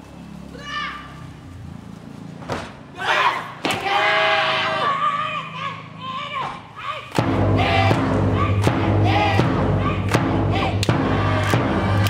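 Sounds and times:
cheering squad shouting: 3.0 - 12.0
bass drum beating: 7.2 - 12.0.

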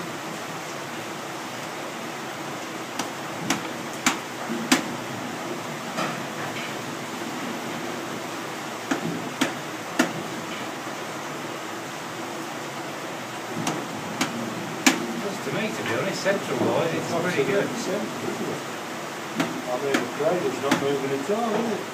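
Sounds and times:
sharp wooden knocks: 19.4 - 20.1.

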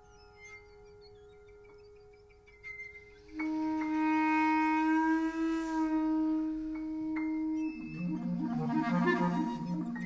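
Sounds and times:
clarinet playing: 3.3 - 10.0.

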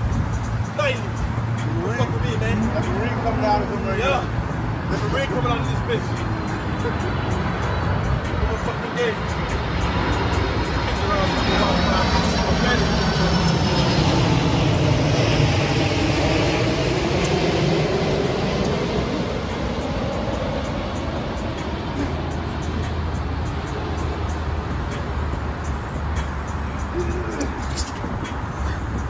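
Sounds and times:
passing engine rumbling: 0.0 - 29.0.

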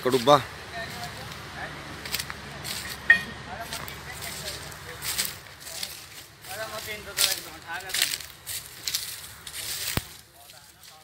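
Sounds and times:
diesel engines rumbling: 0.0 - 11.0
sharp cracks and crackles: 6.9 - 11.0.

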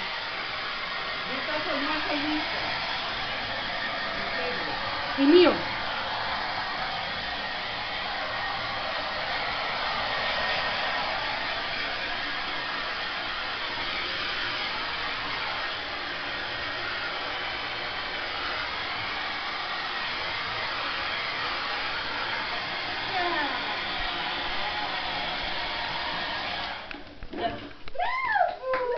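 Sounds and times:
hair dryer blowing: 0.0 - 28.9.

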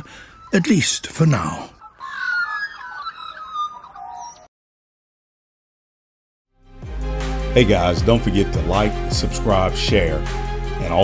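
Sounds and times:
birds chirping: 0.0 - 4.5.

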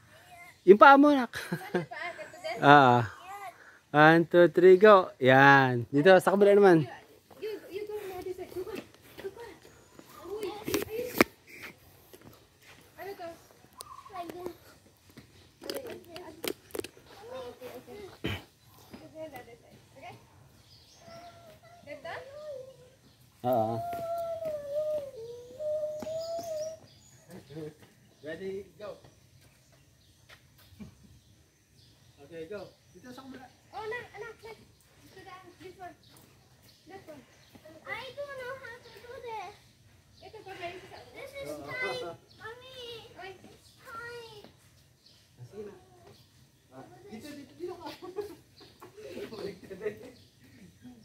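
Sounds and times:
voices talking quietly: 6.8 - 31.2.

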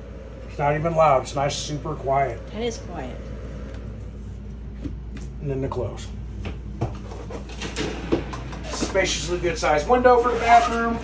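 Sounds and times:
roller shade rustling and scraping: 6.9 - 11.0.

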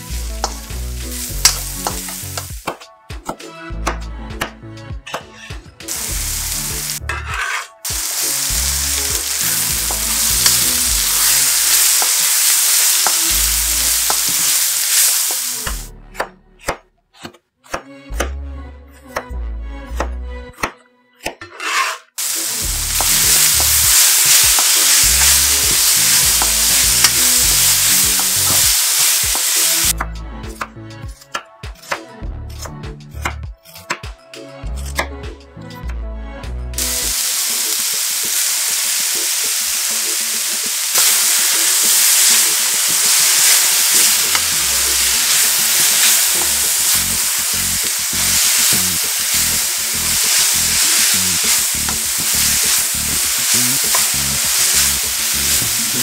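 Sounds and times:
vegetables sizzling in a wok: 0.0 - 2.7, 5.9 - 15.9, 22.2 - 30.0, 36.8 - 56.0
background music: 0.0 - 56.0.

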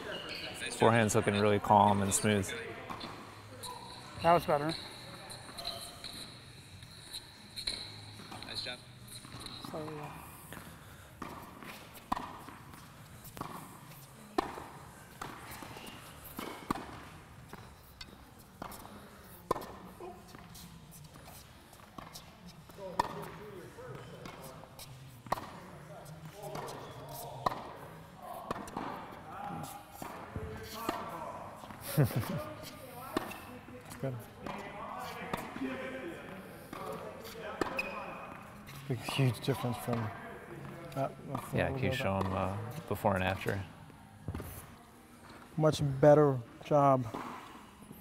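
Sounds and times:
tennis balls struck by racquets: 2.8 - 3.4, 7.6 - 31.8, 32.6 - 44.7.

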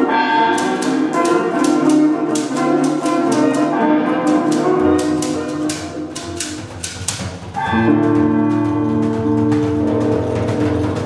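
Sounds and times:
trio playing lute percussion guitar: 0.0 - 11.0.

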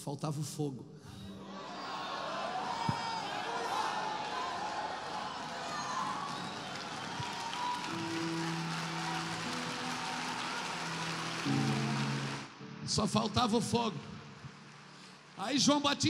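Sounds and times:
audience applauding and cheering: 1.6 - 12.8, 14.0 - 16.0.

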